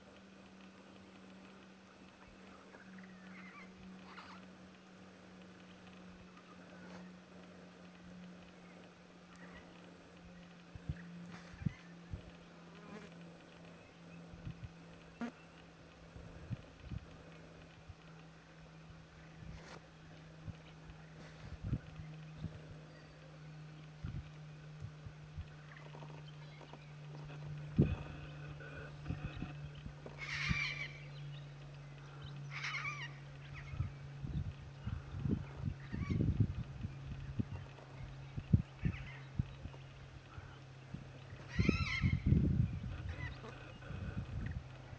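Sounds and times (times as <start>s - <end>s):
low buzzing hum: 0.0s - 44.9s
cockatoo calling: 3.1s - 4.5s, 27.1s - 31.1s, 32.4s - 33.9s, 41.4s - 44.3s.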